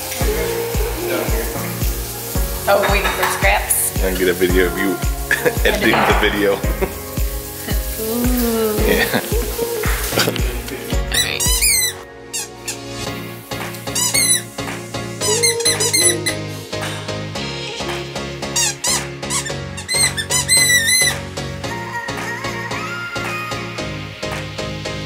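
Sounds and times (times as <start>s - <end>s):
background music with steady beat: 0.0s - 25.0s
squeaky toy squeaking: 11.1s - 12.8s, 14.0s - 14.5s, 15.2s - 16.3s, 18.6s - 21.2s.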